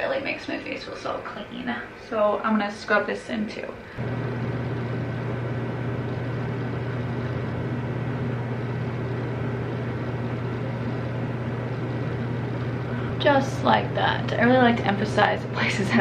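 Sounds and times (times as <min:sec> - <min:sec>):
steady low hum: 0:03.6 - 0:16.0.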